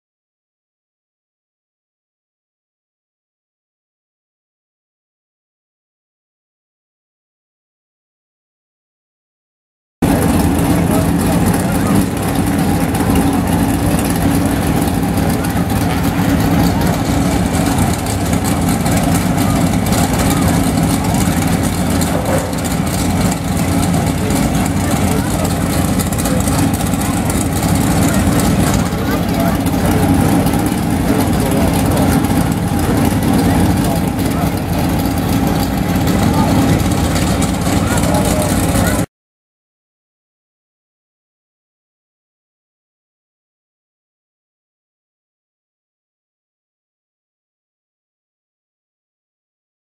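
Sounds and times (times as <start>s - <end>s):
race car engines idling: 10.0s - 39.1s
voices: 10.0s - 39.1s.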